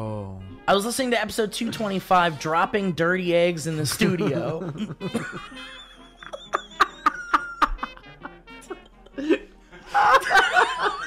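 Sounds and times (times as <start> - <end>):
loud high-pitched laughter: 8.6 - 11.0.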